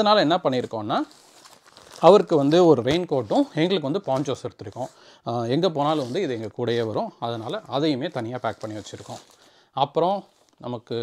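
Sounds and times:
plastic bag crinkling: 0.5 - 5.0, 7.4 - 9.6.

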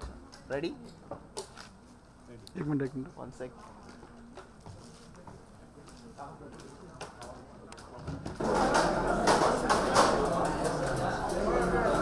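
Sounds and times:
babble of people talking: 1.8 - 12.0
plates and cutlery clinking: 8.4 - 12.0.

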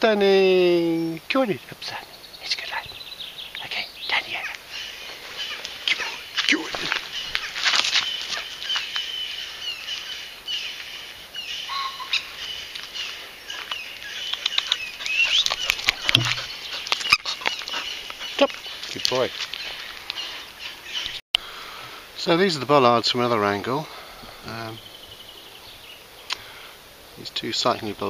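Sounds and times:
songbirds singing and chirping: 0.0 - 28.0.

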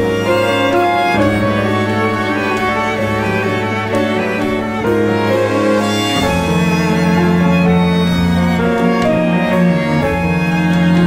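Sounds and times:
string ensemble bowed notes: 0.0 - 11.0.

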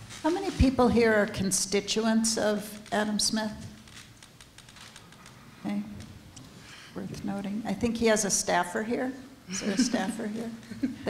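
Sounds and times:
audience clicks and rustles: 2.7 - 6.6.

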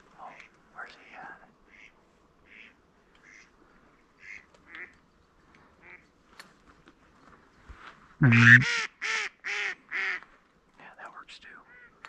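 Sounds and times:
ducks quacking: 8.2 - 8.8.

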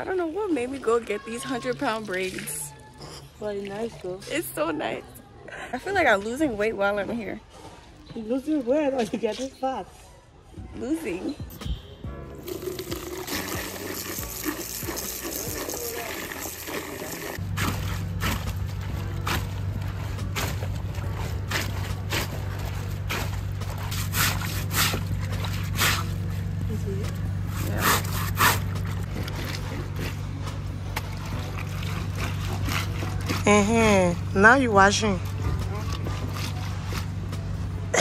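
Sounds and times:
water poured into bucket: 12.4 - 18.0
clothes splashing in water: 12.5 - 26.6, 27.6 - 34.1.

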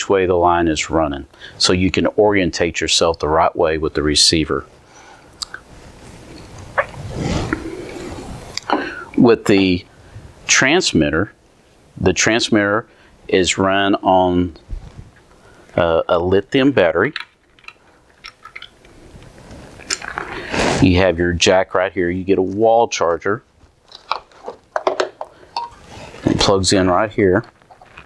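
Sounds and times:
low rustle of handling: 14.6 - 15.4.

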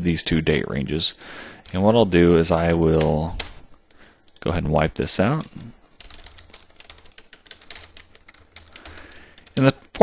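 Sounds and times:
computer keyboard typing: 1.5 - 4.5, 5.2 - 9.8.

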